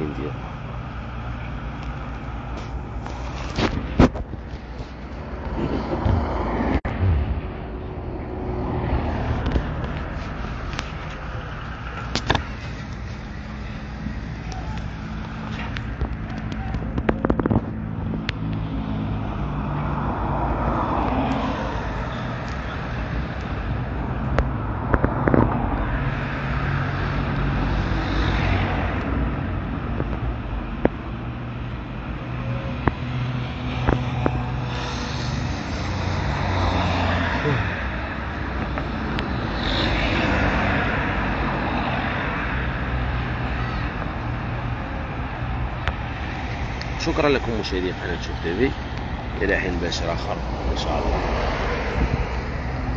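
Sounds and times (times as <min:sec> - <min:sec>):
low rumble of engines: 0:00.0 - 0:52.9
vehicles driving by: 0:00.0 - 0:52.9.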